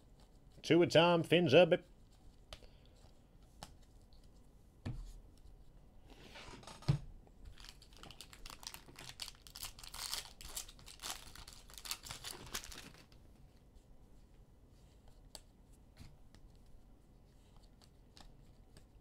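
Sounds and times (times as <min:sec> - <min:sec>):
plastic wrapper tearing and crinkling: 0:07.5 - 0:13.1.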